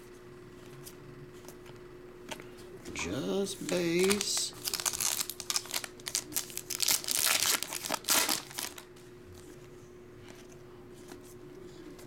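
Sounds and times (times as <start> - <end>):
foil wrapper crinkling: 3.6 - 8.9.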